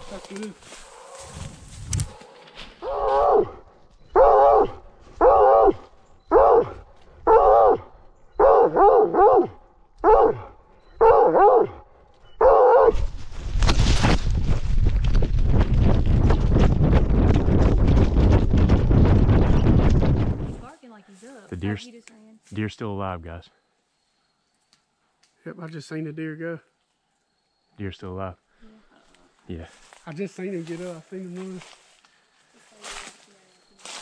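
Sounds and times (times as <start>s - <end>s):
dog crashing through brush and leaves: 13.0s - 15.1s.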